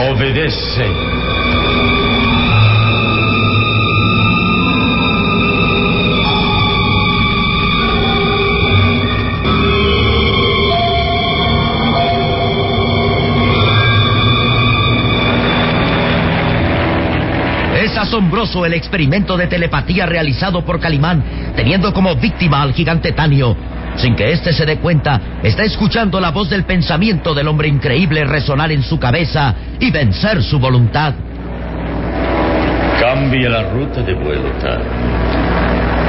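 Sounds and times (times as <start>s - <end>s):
dark music cue: 0.0s - 24.4s, 31.2s - 36.0s
aircraft engine droning: 0.0s - 36.0s.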